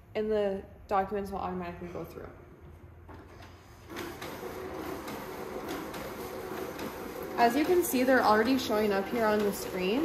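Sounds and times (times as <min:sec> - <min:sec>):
document feeder whirring: 0:03.2 - 0:10.0.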